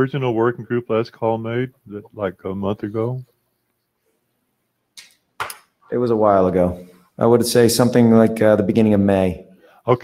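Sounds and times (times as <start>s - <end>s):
man speaking: 0.0s - 3.4s, 5.8s - 10.0s.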